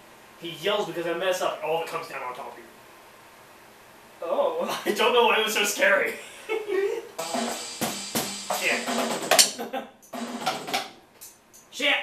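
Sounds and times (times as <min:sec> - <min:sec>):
drum kit hits: 0:07.2 - 0:11.0.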